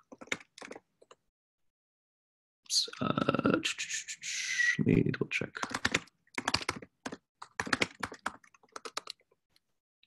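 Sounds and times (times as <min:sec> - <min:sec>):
keyboard typing: 0:00.0 - 0:01.2, 0:05.6 - 0:09.4.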